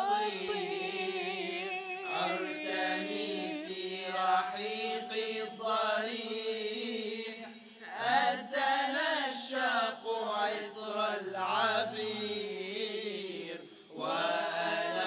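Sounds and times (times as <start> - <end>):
male group singing a cappella: 0.0 - 15.0.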